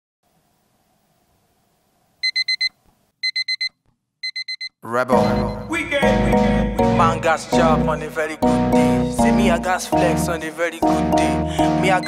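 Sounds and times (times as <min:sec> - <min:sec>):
digital alarm beeping: 0:02.2 - 0:05.7.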